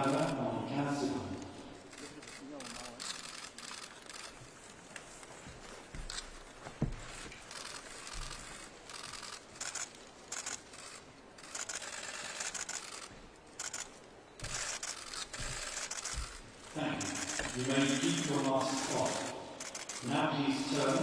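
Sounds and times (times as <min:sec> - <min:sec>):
camera shutters clicking: 0:01.9 - 0:04.6, 0:06.0 - 0:21.0.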